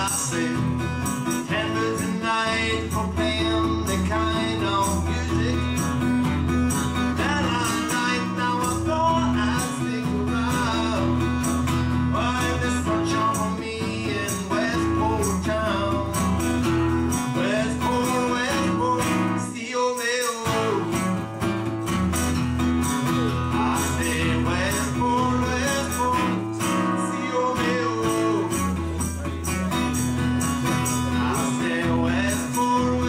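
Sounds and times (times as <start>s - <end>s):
person singing: 0.0s - 6.0s, 7.1s - 11.2s, 12.1s - 16.3s, 17.3s - 21.0s, 23.5s - 29.4s, 30.9s - 33.0s
acoustic guitar strumming: 0.0s - 33.0s.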